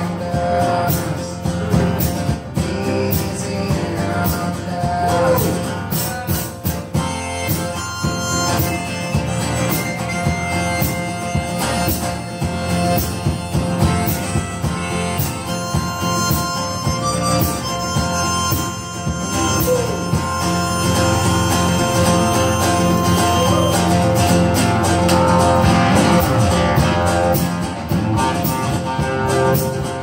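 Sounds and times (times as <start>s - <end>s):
acoustic guitar strumming: 0.0s - 30.0s
bluesy harmonica: 0.0s - 30.0s.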